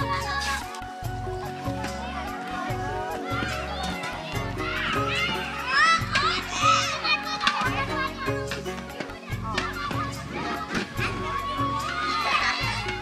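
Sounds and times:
children shrieking while playing: 0:03.2 - 0:08.3, 0:11.4 - 0:13.0.

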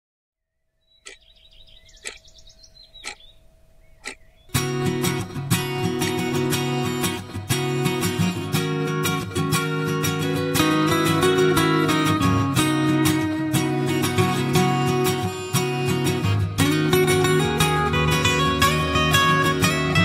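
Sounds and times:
bird trilled chirps: 0:00.5 - 0:04.6
sharp clicks: 0:04.0 - 0:04.2
acoustic guitar music: 0:04.5 - 0:20.0.

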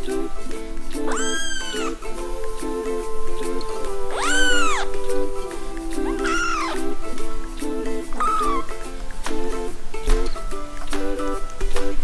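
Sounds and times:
background music with repeating melody: 0:00.0 - 0:12.0
kittens mewing: 0:01.1 - 0:02.0, 0:04.1 - 0:04.9, 0:06.0 - 0:06.9, 0:08.2 - 0:08.7.

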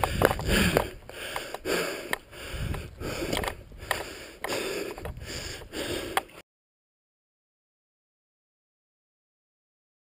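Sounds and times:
bike clicks and knocks: 0:00.0 - 0:05.2
person breathing hard: 0:00.0 - 0:06.4.

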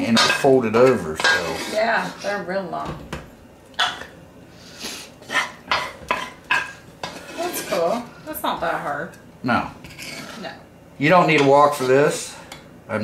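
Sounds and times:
wooden spatula scraping a wok: 0:00.1 - 0:02.5, 0:04.7 - 0:08.8, 0:09.8 - 0:10.6, 0:11.3 - 0:12.5.

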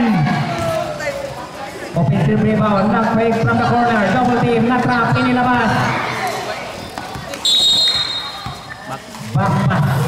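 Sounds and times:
crowd noise: 0:00.0 - 0:10.0
basketball bouncing on court: 0:06.8 - 0:08.9
referee's whistle: 0:07.4 - 0:08.8.

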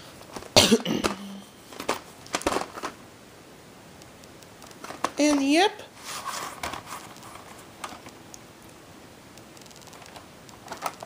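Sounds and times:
plastic cases knocking and rustling: 0:00.3 - 0:03.0, 0:04.6 - 0:05.6, 0:06.4 - 0:08.1, 0:09.8 - 0:11.0.

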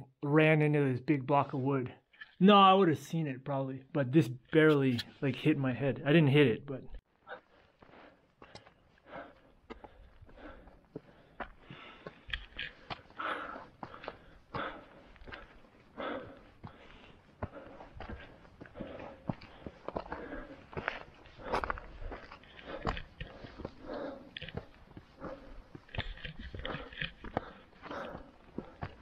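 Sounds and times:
footsteps on rock and gravel: 0:07.8 - 0:29.0.

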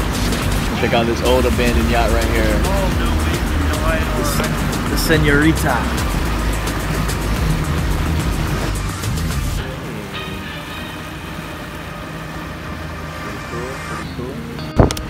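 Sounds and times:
boat motor humming: 0:00.0 - 0:15.0
rush of wind and water: 0:00.0 - 0:15.0.

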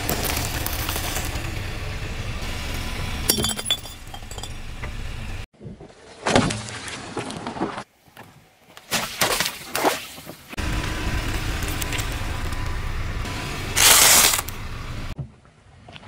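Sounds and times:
tyre crushing small balls: 0:00.0 - 0:01.7, 0:13.8 - 0:14.5.

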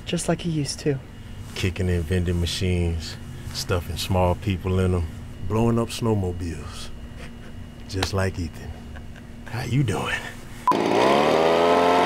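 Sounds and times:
small gas engine revving: 0:10.7 - 0:12.0.

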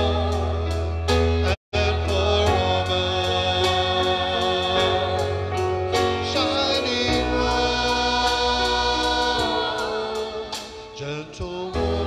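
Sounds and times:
choir singing a hymn: 0:00.0 - 0:12.0.

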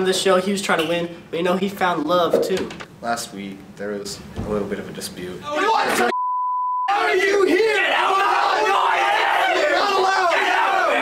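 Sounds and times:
teenagers yelling: 0:05.4 - 0:06.1, 0:06.9 - 0:11.0
censor bleep: 0:06.1 - 0:06.9.

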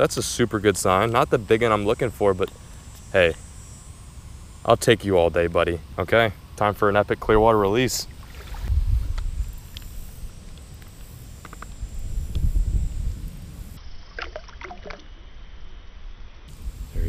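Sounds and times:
low microphone rumble: 0:07.3 - 0:10.6, 0:11.7 - 0:13.8
water sloshing and dripping: 0:08.2 - 0:08.7, 0:14.1 - 0:15.1
faint splashes: 0:08.2 - 0:08.8, 0:14.1 - 0:15.1.

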